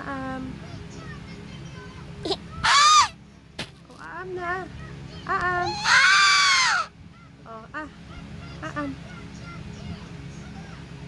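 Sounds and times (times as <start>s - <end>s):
toddler squealing: 2.6s - 3.2s, 5.6s - 6.9s.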